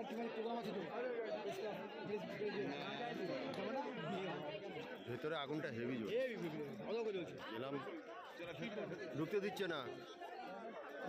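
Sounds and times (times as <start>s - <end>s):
background chatter: 0.0s - 11.0s.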